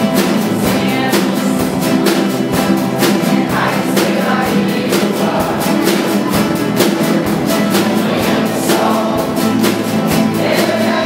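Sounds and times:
acoustic guitars strumming: 0.0s - 11.0s
group singing: 0.0s - 11.0s.

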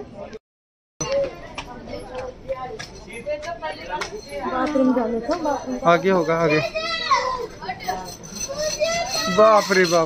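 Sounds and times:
child's high-pitched call: 6.4s - 9.7s.

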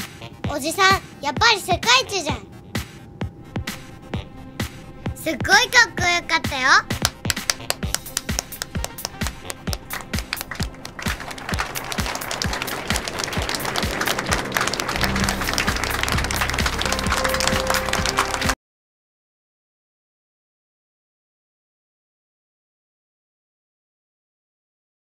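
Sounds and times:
background music: 0.0s - 18.6s
crowd clapping: 6.9s - 18.6s.

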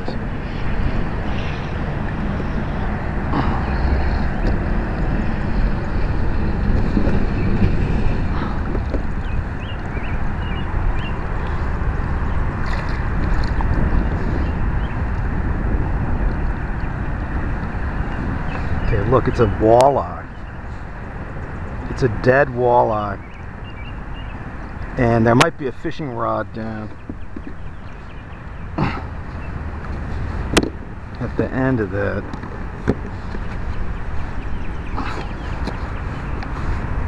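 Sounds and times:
wind on microphone: 0.0s - 37.0s.

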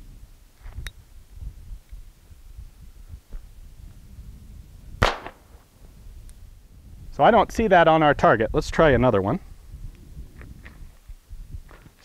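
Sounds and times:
revolver shot: 5.0s - 5.5s.

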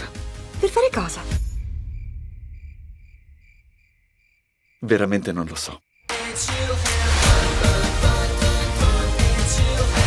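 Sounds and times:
crickets chirping: 0.6s - 6.4s.

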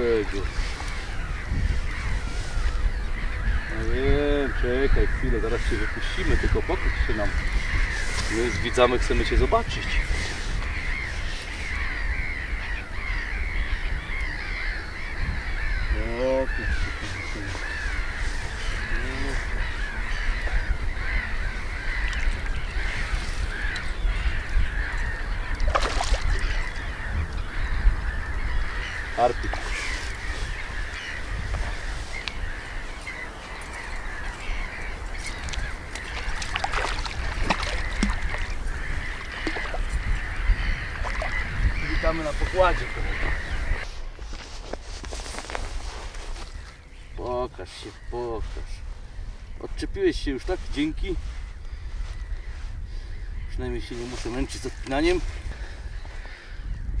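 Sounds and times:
birds chirping in chorus: 0.0s - 57.0s
fish splashing: 25.5s - 26.8s, 33.7s - 40.1s, 40.9s - 41.5s.

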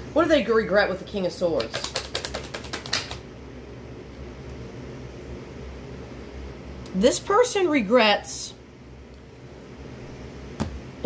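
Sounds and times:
rapid sharp clicks: 1.6s - 3.2s.

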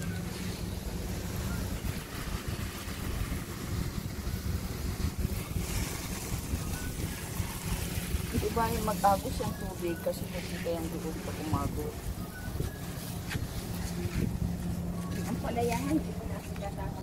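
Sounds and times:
hose water spraying on plants: 0.0s - 17.0s
wind rumble on microphone: 0.0s - 17.0s.

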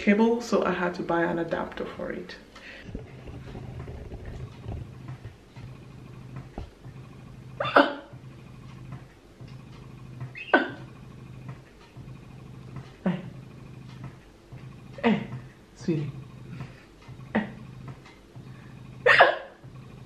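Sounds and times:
breast pump motor hum: 0.0s - 20.0s.

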